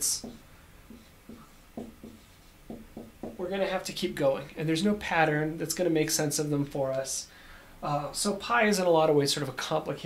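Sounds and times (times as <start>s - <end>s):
marker writing on whiteboard: 0.0s - 3.6s.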